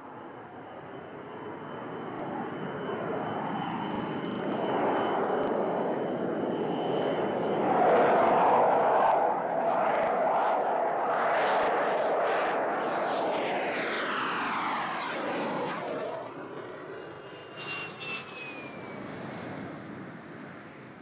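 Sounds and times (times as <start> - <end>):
rushing jet engine noise: 0.0 - 21.0.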